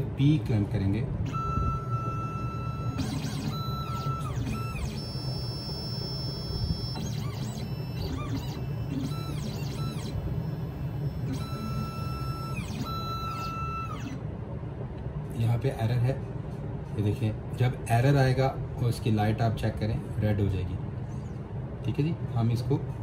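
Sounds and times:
stepper motors whining: 1.3 - 14.2.

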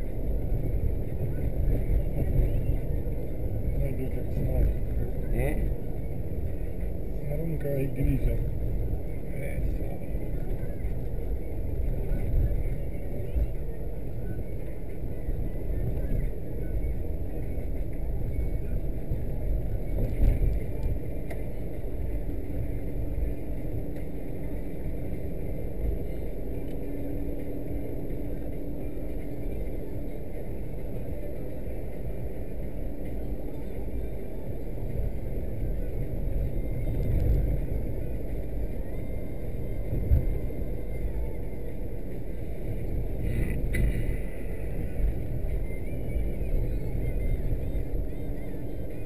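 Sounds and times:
engine rumble: 0.0 - 49.0.

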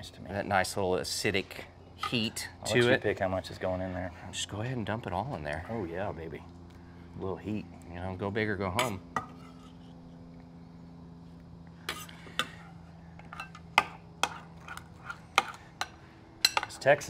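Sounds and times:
metal spoon clinking on glass bowl: 15.4 - 16.8.

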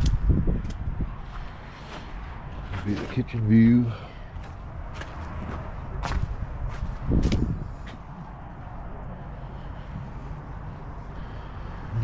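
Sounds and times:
footsteps: 4.3 - 8.2.

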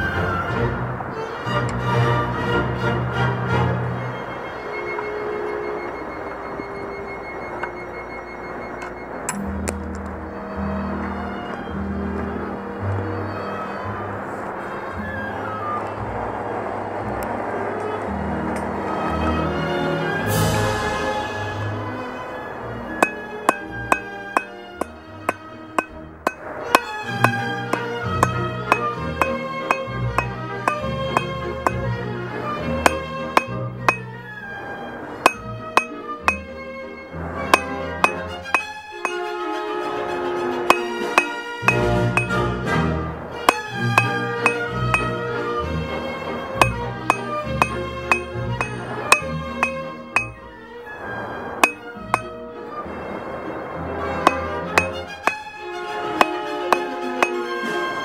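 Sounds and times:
hammer striking steel on anvil: 9.3 - 9.8, 23.0 - 31.9, 32.8 - 34.1, 35.2 - 36.5, 37.5 - 39.3, 40.7 - 42.4, 43.4 - 45.2, 46.6 - 50.5, 51.6 - 52.4, 54.2 - 55.4, 56.2 - 57.5
background music: 18.0 - 58.0.

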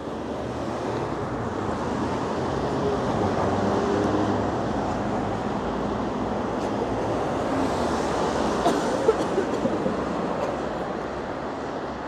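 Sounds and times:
cars driving past: 0.1 - 12.0.

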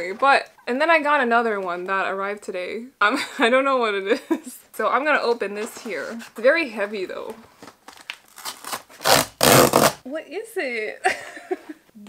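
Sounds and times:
cardboard and tape ripping: 7.6 - 10.0.

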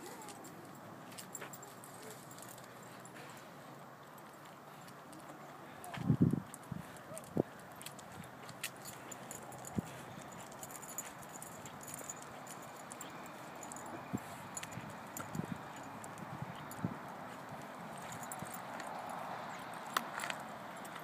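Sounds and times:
leash and harness clicks: 0.0 - 21.0
outdoor background noise: 0.0 - 21.0.

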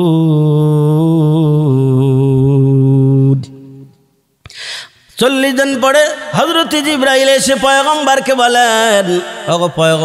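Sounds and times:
man chanting recitation: 5.2 - 10.0.

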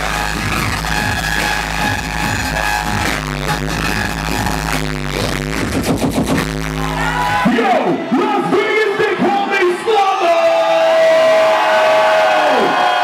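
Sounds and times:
dubstep over sound system: 0.0 - 9.9.

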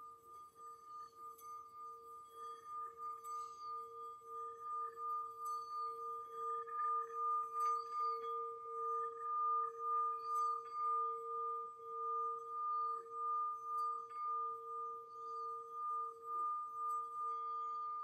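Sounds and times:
singing bowl ringing: 0.0 - 18.0.

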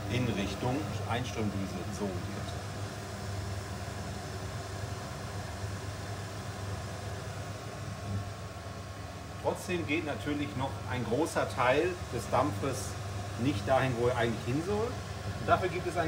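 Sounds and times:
extractor fan whooshing hum: 0.0 - 16.0.

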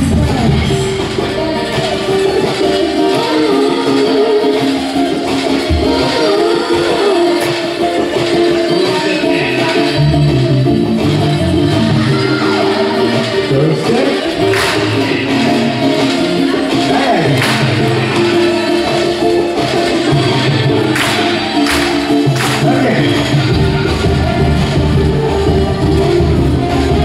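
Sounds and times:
bass line: 0.0 - 27.0
dance music with singing: 0.0 - 27.0.

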